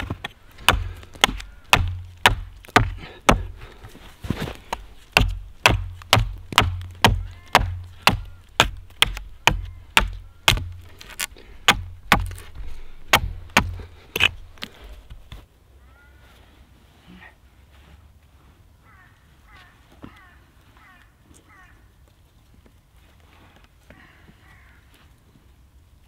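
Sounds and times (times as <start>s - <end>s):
axe chopping wood: 0.0s - 3.6s, 4.4s - 14.4s.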